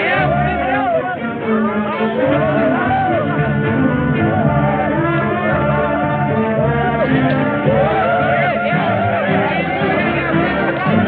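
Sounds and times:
orchestral music with brass: 0.0s - 11.0s.

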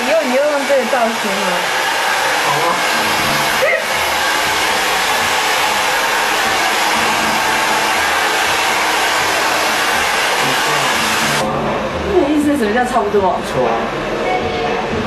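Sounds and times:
hair dryer running: 0.0s - 11.5s.

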